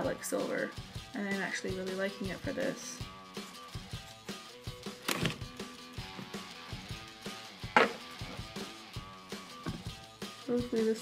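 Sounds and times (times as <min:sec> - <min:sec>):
soft plucked background music: 0:00.0 - 0:11.0.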